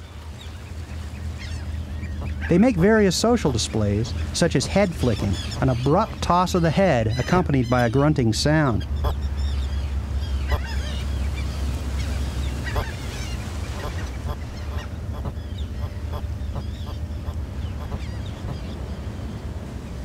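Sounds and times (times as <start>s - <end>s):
low rumble of surf: 0.0s - 20.0s
seabird calls: 0.0s - 20.0s.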